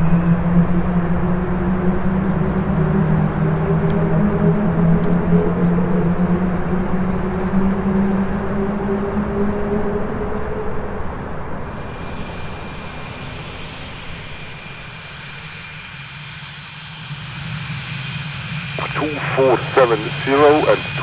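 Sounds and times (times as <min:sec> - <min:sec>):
jet engine high whine: 0:00.0 - 0:21.0.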